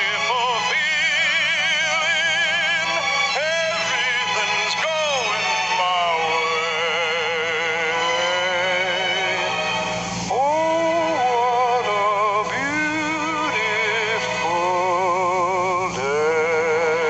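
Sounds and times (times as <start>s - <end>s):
instrumental accompaniment: 0.0s - 17.0s
man singing show tune: 0.0s - 17.0s.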